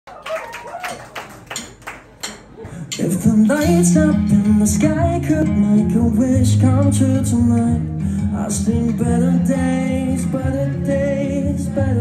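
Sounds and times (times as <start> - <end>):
audience clapping in time: 0.1 - 2.6.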